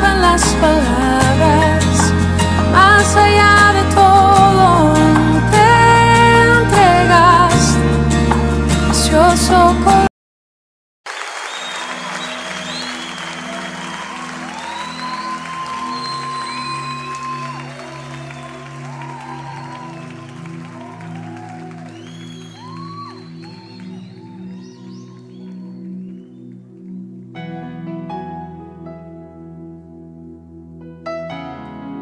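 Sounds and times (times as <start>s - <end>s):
audience applause: 11.1s - 26.8s
high calls from crowd: 11.6s - 26.1s
sustained low chords: 21.9s - 31.0s.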